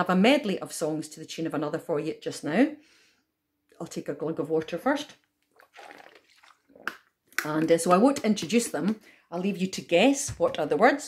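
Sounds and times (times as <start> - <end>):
gulping and swallowing water: 5.5 - 7.2.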